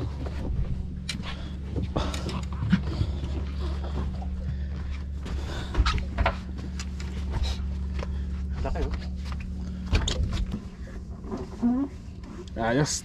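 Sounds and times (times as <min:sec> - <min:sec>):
boat engine idling: 0:00.0 - 0:13.0.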